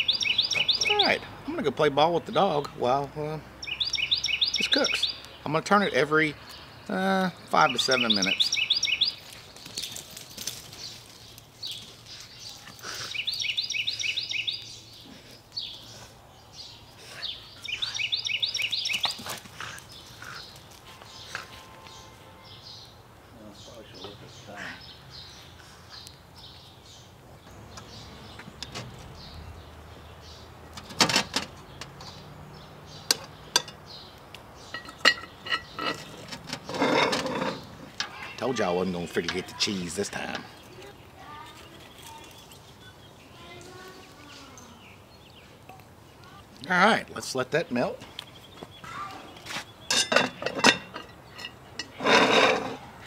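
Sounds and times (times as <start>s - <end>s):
birds chirping: 0.0s - 53.0s
metal lid clanking on pot: 49.9s - 52.8s.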